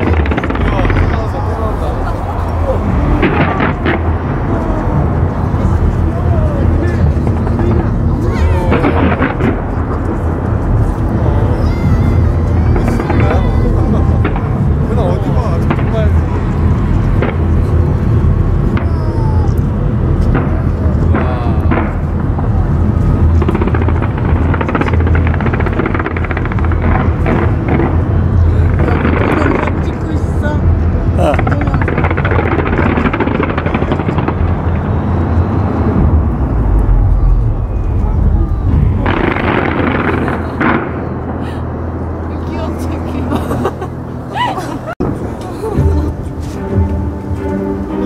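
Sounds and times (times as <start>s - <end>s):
fireworks rumbling and crackling: 0.0s - 48.0s.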